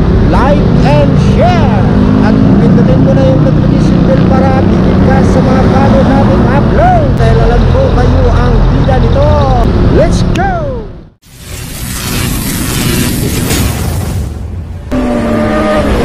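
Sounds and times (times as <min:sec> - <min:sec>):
road traffic rumble: 0:00.0 - 0:13.7
person talking: 0:00.3 - 0:11.0.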